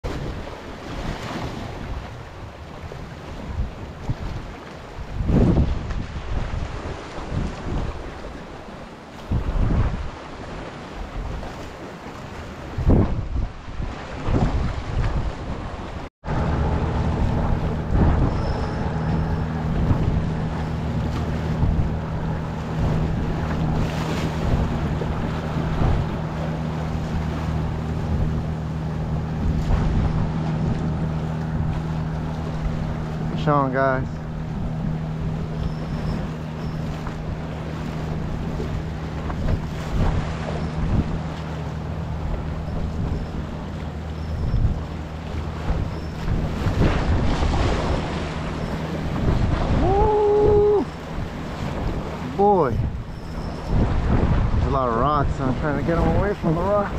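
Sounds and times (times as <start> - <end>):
wind buffeting microphone: 0.0 - 56.9
low engine-like hum: 15.1 - 56.9
waves splashing against concrete: 17.1 - 56.9.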